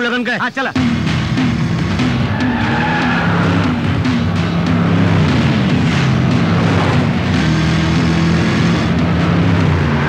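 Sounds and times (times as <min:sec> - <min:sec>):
background music: 0:00.0 - 0:10.0
tyres skidding: 0:00.7 - 0:10.0
car speeding off: 0:00.8 - 0:10.0.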